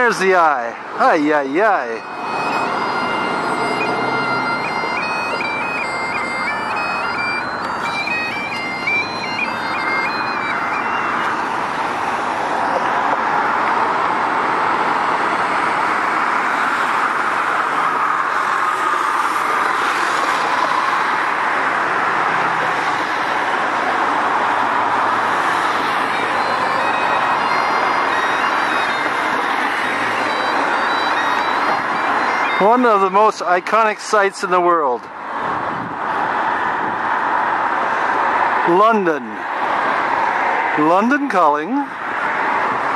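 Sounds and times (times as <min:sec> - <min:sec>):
high piping tune: 0:00.0 - 0:12.8, 0:25.2 - 0:34.6
road traffic noise: 0:00.0 - 0:42.9.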